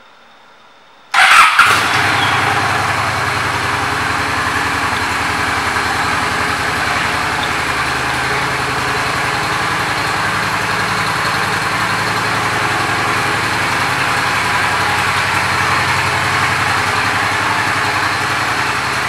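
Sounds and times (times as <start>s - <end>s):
motorcycle engine idling: 1.2s - 19.0s.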